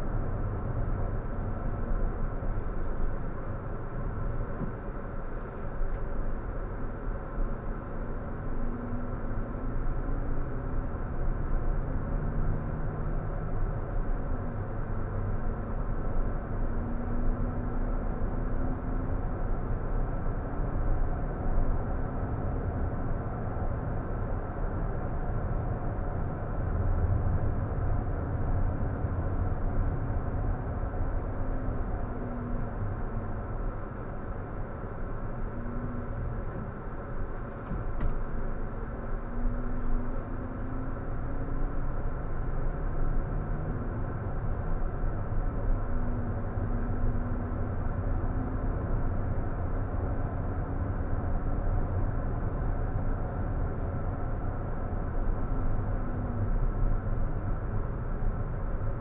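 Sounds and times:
bus engine drone: 0.0s - 59.0s
road rumble: 0.0s - 59.0s.

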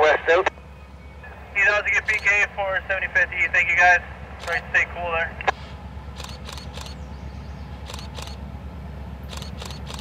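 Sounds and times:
low steady rumble: 0.0s - 10.0s
camera shutter clicking: 6.2s - 7.0s, 7.9s - 8.4s, 9.3s - 10.0s.

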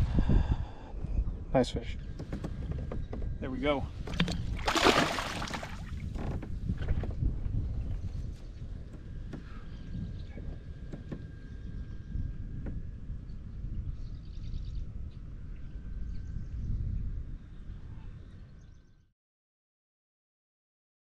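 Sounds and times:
wind noise on microphone: 0.0s - 19.1s.

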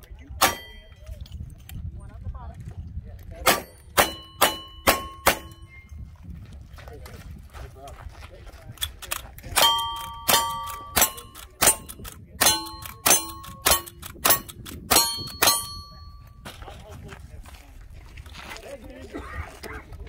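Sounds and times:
steel target ringing clang: 0.4s - 1.0s, 3.5s - 5.8s, 9.6s - 16.3s
rifle shots: 3.4s - 5.6s.

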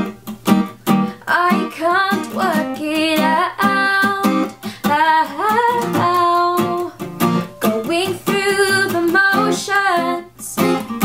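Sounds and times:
strummed acoustic guitar: 0.0s - 11.0s
woman singing: 1.2s - 11.0s.

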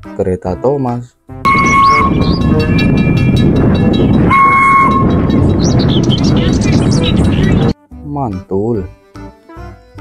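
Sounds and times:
music: 0.0s - 10.0s
steam locomotive whistle: 1.5s - 2.8s, 4.2s - 5.4s
train running: 1.5s - 7.7s.

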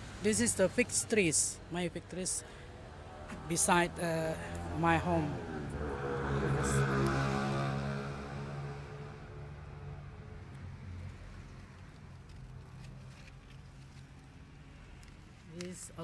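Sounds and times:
engine hum: 0.0s - 16.0s.

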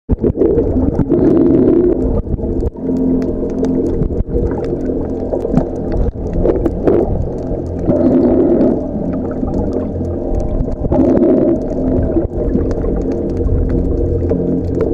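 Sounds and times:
sharp clicks and crackles: 0.1s - 14.9s
underwater rumble of moving water: 0.1s - 14.9s.

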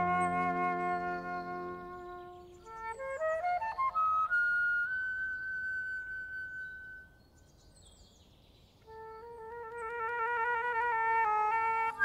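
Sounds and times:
flute playing: 0.0s - 7.2s, 8.9s - 12.0s
birdsong chirps: 0.0s - 12.0s.

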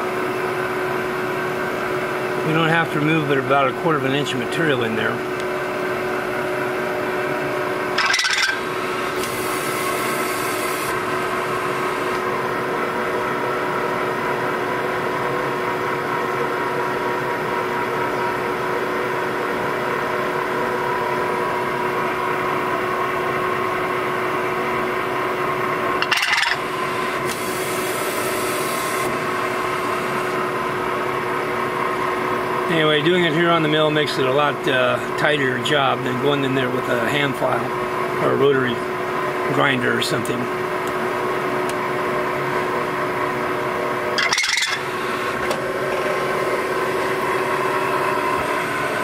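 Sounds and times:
milling machine running: 0.0s - 49.0s
hiss: 9.2s - 11.0s, 27.3s - 29.1s.

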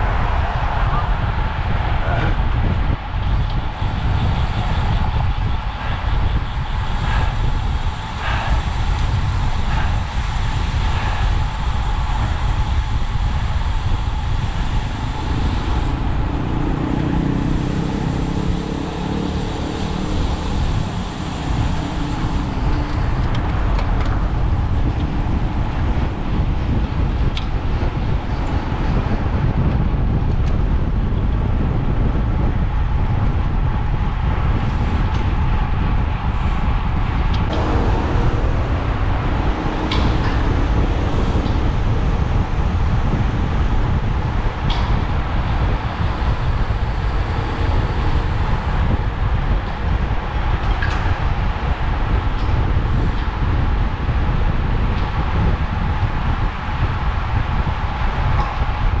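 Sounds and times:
tyre and road noise: 0.0s - 59.0s
wind rush on microphone: 0.0s - 59.0s.

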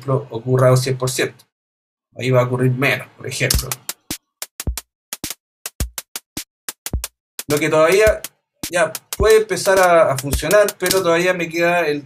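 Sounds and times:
deep kick drums: 3.5s - 11.0s.

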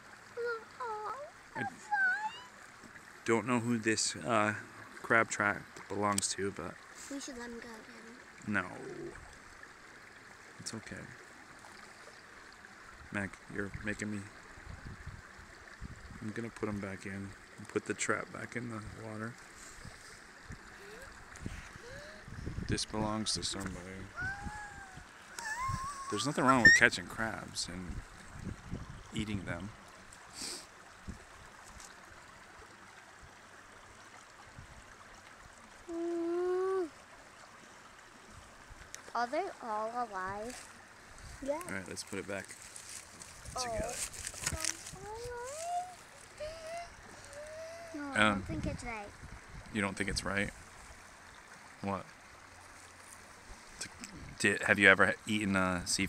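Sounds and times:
stream running: 0.0s - 56.0s.

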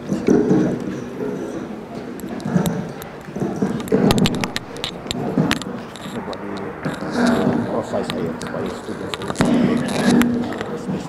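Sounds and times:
handled objects clicking and rattling: 0.0s - 11.0s
people chattering: 0.0s - 11.0s.

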